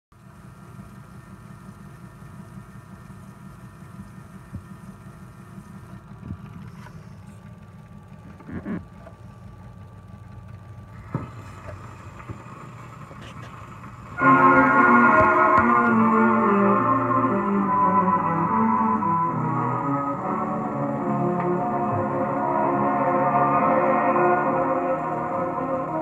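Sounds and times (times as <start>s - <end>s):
record surface noise and rumble: 0.2s - 26.0s.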